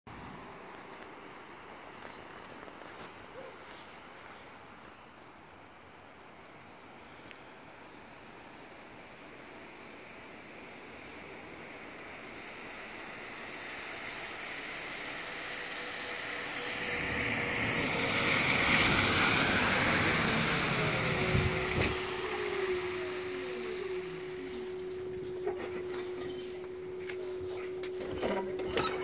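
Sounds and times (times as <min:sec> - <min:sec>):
bus tyre and road noise: 0:00.1 - 0:29.0
steady bus hum: 0:00.1 - 0:29.0
falling electric whines: 0:11.1 - 0:29.0.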